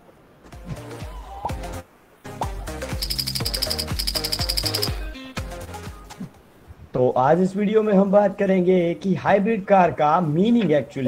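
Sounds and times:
fast high ticking beats: 0:02.7 - 0:05.2.

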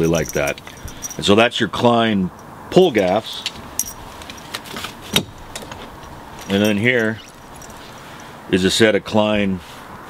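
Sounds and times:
metal climbing spurs clinking: 0:00.0 - 0:01.4, 0:02.3 - 0:05.0, 0:05.6 - 0:08.3.

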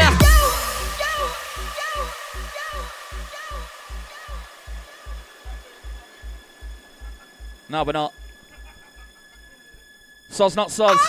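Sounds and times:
hissing echo tail: 0:00.0 - 0:11.0.

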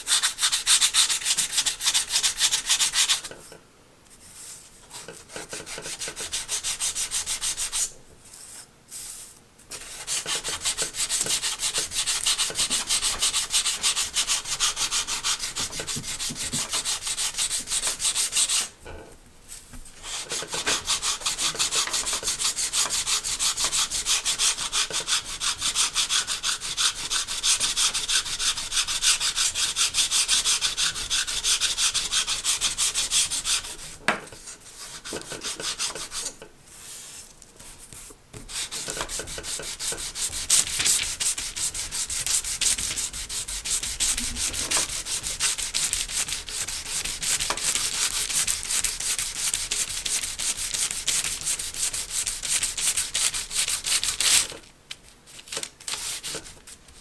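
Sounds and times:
sandpaper rubbing on wood: 0:00.0 - 0:03.3, 0:09.7 - 0:18.7, 0:20.0 - 0:34.0, 0:34.8 - 0:36.3, 0:38.5 - 0:54.5.

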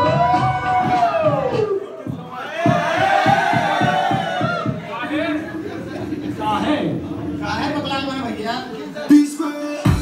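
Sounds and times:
crowd cheering and shouting: 0:00.0 - 0:05.6
music with steady beat: 0:00.0 - 0:06.1, 0:09.0 - 0:10.0.

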